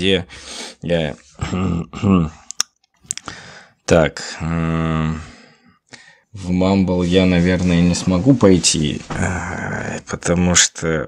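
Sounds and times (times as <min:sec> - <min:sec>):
man speaking: 0:00.0 - 0:02.6, 0:03.9 - 0:05.4, 0:06.4 - 0:11.0.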